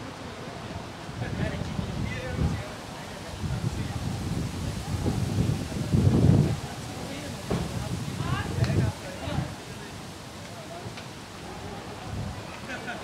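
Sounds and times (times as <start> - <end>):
people talking: 0.0 - 13.0
wind on microphone: 0.6 - 9.9, 11.9 - 12.5.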